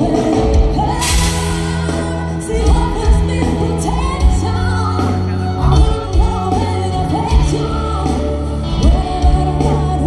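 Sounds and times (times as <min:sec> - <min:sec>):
live band with singer: 0:00.0 - 0:10.0.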